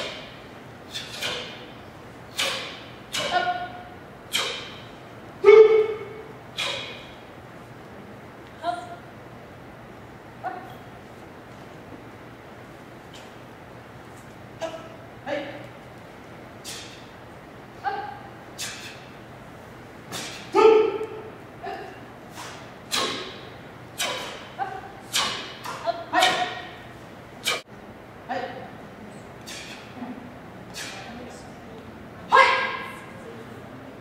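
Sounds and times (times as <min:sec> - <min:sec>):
sharp kiai shouts: 0:00.0 - 0:01.7, 0:02.3 - 0:07.2, 0:14.6 - 0:15.6, 0:17.8 - 0:19.0, 0:20.1 - 0:27.6, 0:30.7 - 0:31.2, 0:32.3 - 0:33.2
sharp crack: 0:02.3 - 0:03.4.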